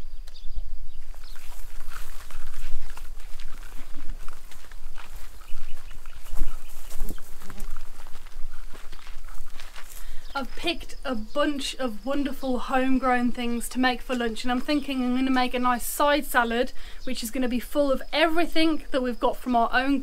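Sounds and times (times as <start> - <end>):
wind on microphone: 0.0 - 9.6
footsteps through long grass: 0.8 - 10.6.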